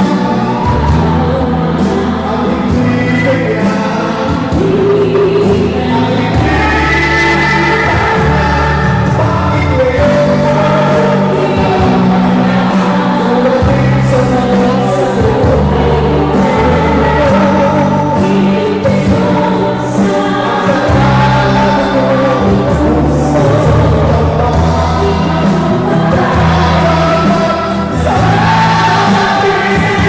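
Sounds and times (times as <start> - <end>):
group singing over a beat: 0.0 - 30.0.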